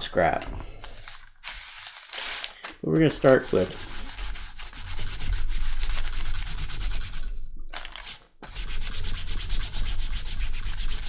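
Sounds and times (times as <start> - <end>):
cloth and leather rubbing on paper: 3.2 - 7.3, 8.0 - 11.0.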